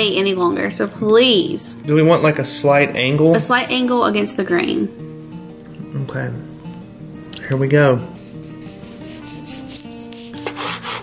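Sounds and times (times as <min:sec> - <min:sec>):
soft background music: 0:00.0 - 0:11.0
knife scraping cutting board: 0:08.4 - 0:11.0.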